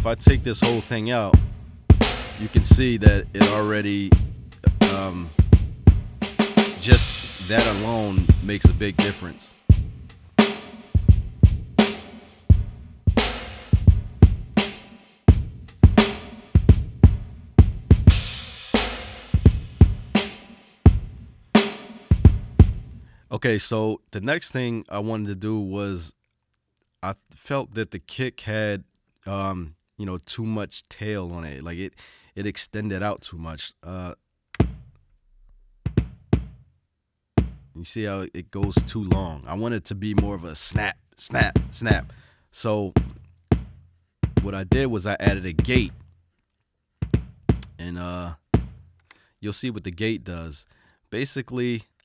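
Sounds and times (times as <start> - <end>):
hip-hop drum beat: 0.0 - 23.0, 34.6 - 34.9, 35.8 - 36.6, 37.4 - 37.7, 38.6 - 39.4, 40.2 - 42.2, 42.9 - 46.0, 47.0 - 47.8, 48.6 - 48.8.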